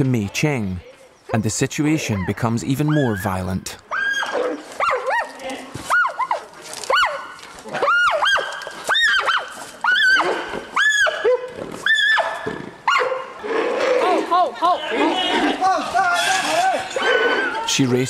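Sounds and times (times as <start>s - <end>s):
panda squealing: 2.0s - 5.0s, 14.0s - 17.7s.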